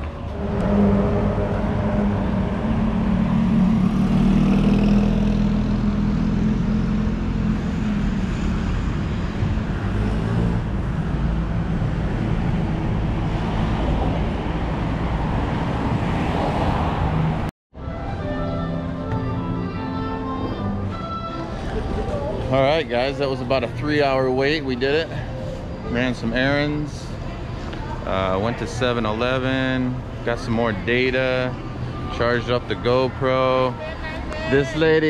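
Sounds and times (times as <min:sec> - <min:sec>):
street traffic passing: 0:00.0 - 0:35.0
music with sustained notes: 0:17.8 - 0:22.6.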